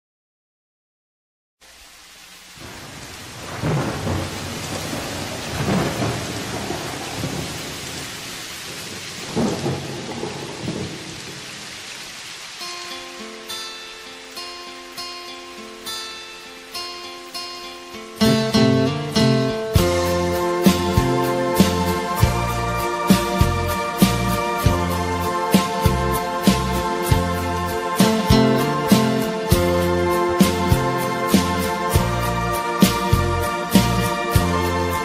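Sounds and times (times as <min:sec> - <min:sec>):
steady rain: 0:01.6 - 0:35.0
thunder rolling: 0:02.6 - 0:11.6
melody of ringing notes: 0:18.2 - 0:25.4
band with bass playing: 0:18.2 - 0:35.0.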